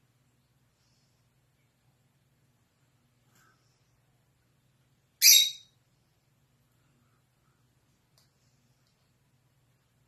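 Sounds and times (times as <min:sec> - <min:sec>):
shrill bird squawk: 0:05.2 - 0:05.8.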